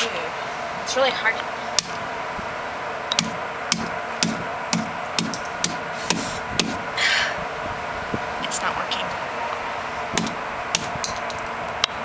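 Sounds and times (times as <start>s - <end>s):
short rustling hiss: 5.9s - 6.5s.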